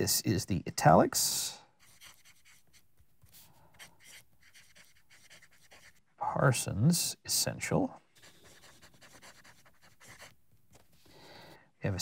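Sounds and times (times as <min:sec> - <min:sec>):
pen nib scratching on paper: 0:01.8 - 0:06.1, 0:08.2 - 0:10.9.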